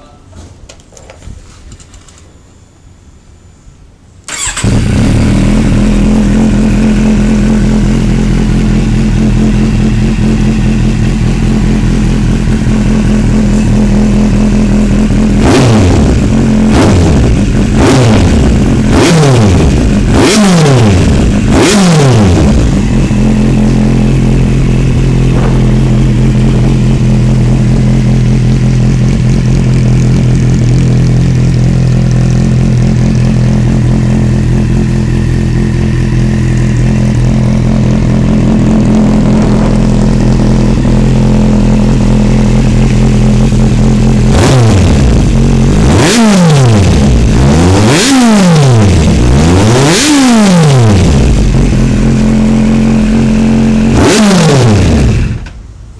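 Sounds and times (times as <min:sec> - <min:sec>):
motorcycle engine idling and revving: 0:04.3 - 0:55.9.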